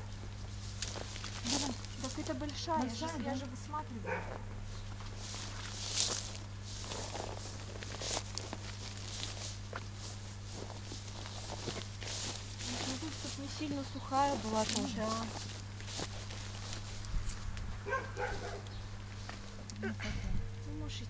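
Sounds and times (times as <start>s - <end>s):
footsteps crunching dry grass: 0.1s - 19.7s
dry branches crackling and snapping: 0.2s - 3.8s, 4.5s - 19.9s.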